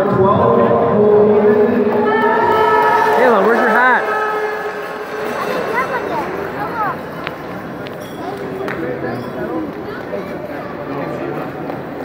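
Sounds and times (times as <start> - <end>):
children yelling and cheering: 2.1 - 7.1.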